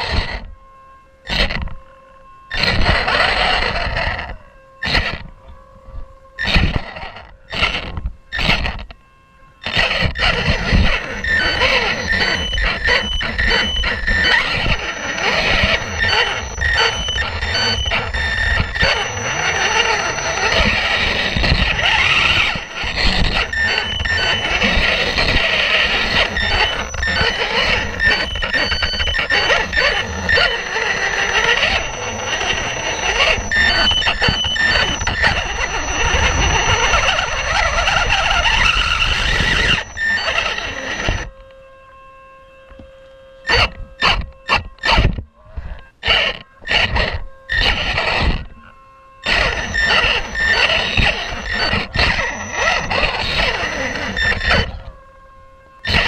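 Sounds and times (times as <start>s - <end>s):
electric motor and gears whining: 0.0s - 56.0s.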